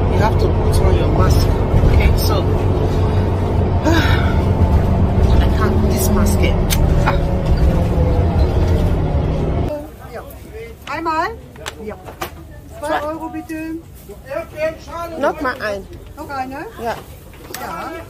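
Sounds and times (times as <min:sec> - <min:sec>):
bus engine and road rumble: 0:00.0 - 0:18.0.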